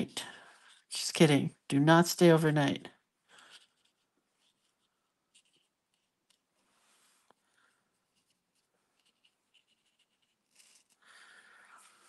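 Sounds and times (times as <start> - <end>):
brush scratching paper: 3.4 - 6.4, 8.0 - 11.0.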